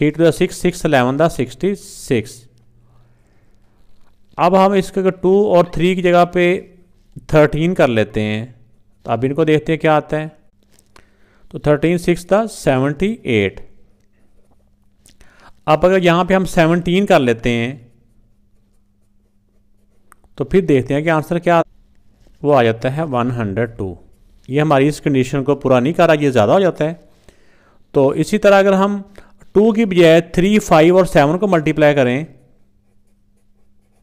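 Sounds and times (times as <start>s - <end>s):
faint steady hum: 0.0s - 34.0s
marker scratching on paper: 17.8s - 20.1s, 32.2s - 34.0s.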